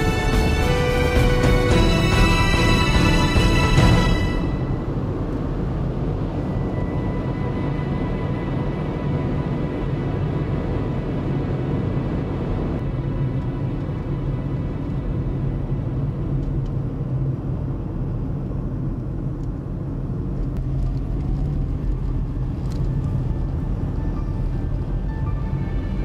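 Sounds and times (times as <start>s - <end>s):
car engine and tyre rumble: 0.0s - 26.0s
faint music: 20.6s - 26.0s.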